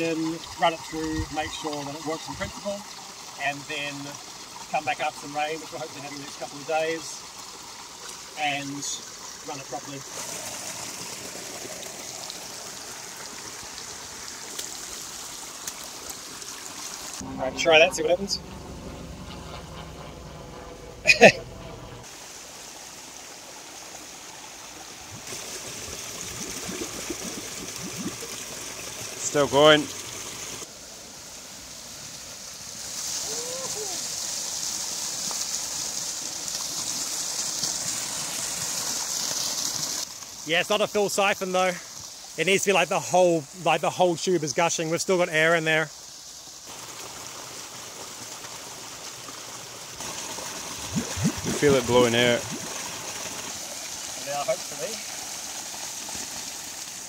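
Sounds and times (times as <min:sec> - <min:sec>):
stream splashing over rocks: 0:00.0 - 0:18.2, 0:22.0 - 0:57.0.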